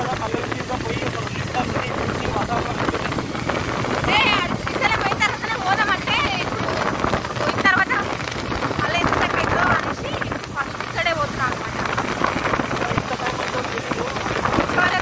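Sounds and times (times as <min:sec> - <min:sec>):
people talking: 0:00.0 - 0:15.0
wind rush on microphone: 0:00.0 - 0:15.0.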